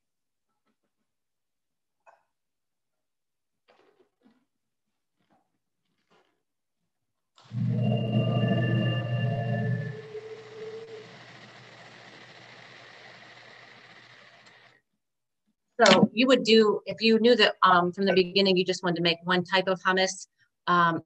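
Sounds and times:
food processor whirring: 0:09.8 - 0:14.8.

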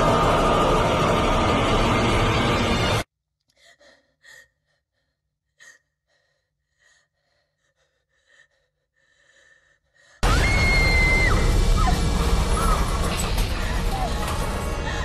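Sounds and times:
horror film score: 0:00.0 - 0:15.0.

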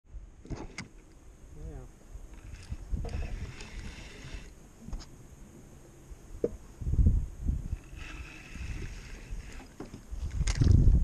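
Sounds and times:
wind buffeting microphone: 0:01.6 - 0:05.0, 0:06.4 - 0:11.0
water sloshing against hull: 0:07.8 - 0:10.8.

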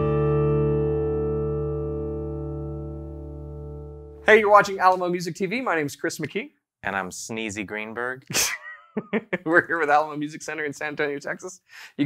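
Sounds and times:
guitar chord ringing: 0:00.0 - 0:04.3.

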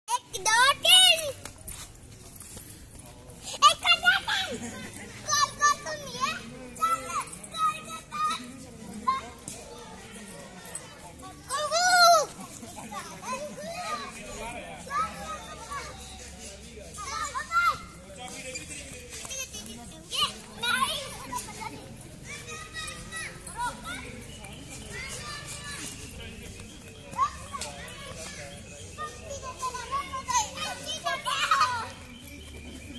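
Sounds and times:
children playing and calling out: 0:00.1 - 0:32.9
children shouting: 0:11.4 - 0:12.4, 0:24.8 - 0:26.0, 0:27.1 - 0:32.1.

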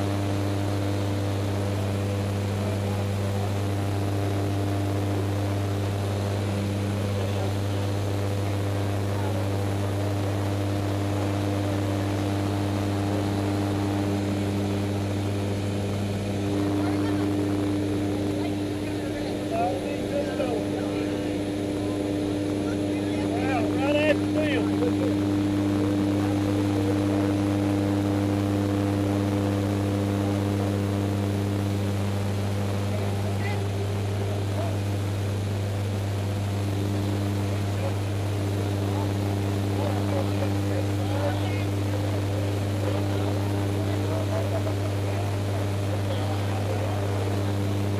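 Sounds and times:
propeller airplane engine drone: 0:00.0 - 0:47.9.

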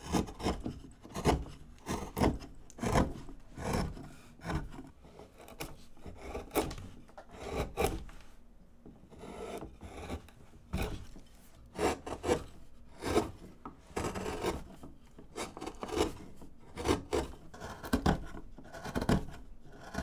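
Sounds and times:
carving gouge scraping wood: 0:00.0 - 0:08.2, 0:09.0 - 0:20.0.

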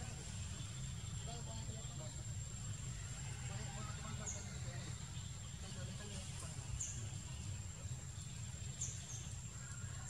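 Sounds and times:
faint indistinct chatter: 0:00.0 - 0:10.0.

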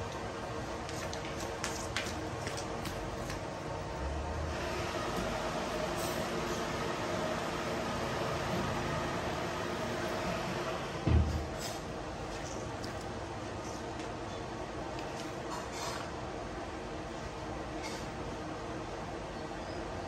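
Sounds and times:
fans blowing air: 0:00.0 - 0:20.0.

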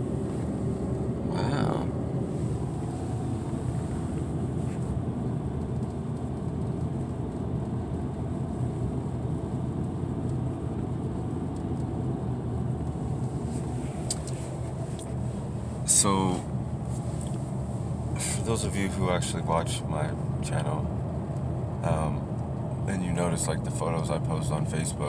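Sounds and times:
car cabin engine and tyre rumble: 0:00.0 - 0:25.0.

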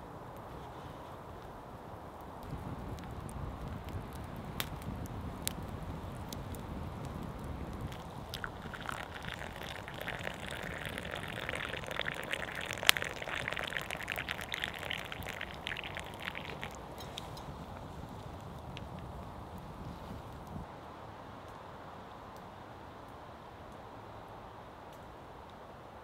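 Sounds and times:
campfire crackling and popping: 0:02.2 - 0:20.6
coffee pouring into wooden cup: 0:07.3 - 0:17.8.

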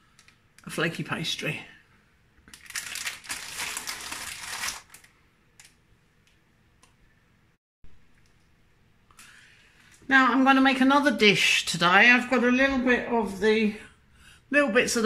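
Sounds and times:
packaging crinkling: 0:02.4 - 0:05.8.

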